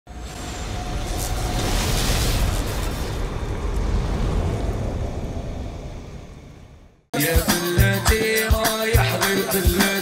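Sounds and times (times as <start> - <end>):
deep noisy rumble: 0.1 - 7.1.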